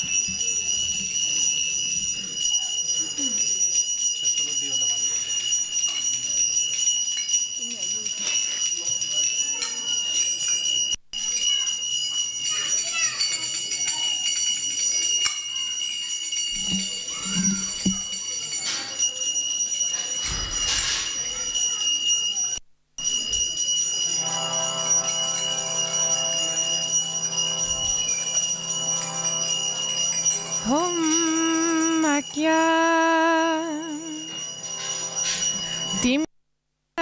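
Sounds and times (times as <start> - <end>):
handbell ringing: 0.0 - 36.2
harmonium chord: 24.1 - 31.6.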